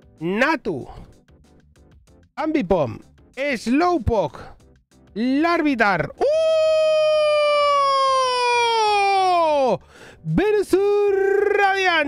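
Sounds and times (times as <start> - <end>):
man crying out high-pitched: 6.2 - 9.8, 10.8 - 12.0.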